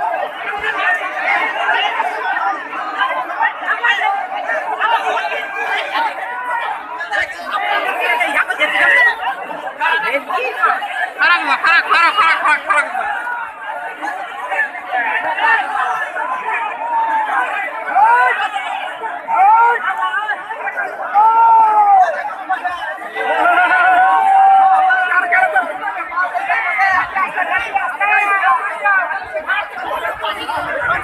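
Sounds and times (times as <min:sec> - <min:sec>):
crowd of men chattering: 0:00.0 - 0:31.0
drawn-out shouts: 0:00.0 - 0:31.0.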